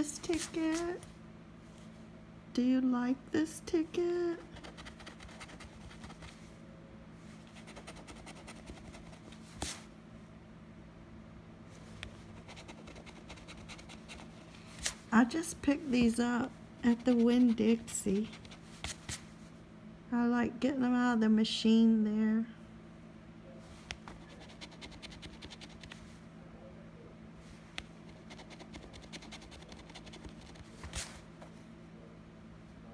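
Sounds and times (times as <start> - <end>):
faint low hum: 0.0 - 32.9.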